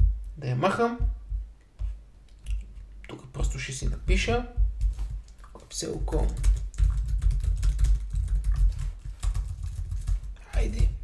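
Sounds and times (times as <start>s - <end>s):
typing on computer keyboard: 5.2s - 11.0s.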